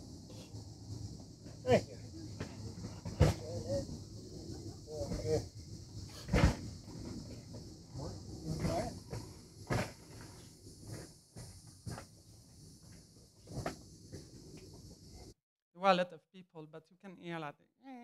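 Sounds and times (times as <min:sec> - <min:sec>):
crickets chirping over loudspeakers: 0:00.0 - 0:15.4.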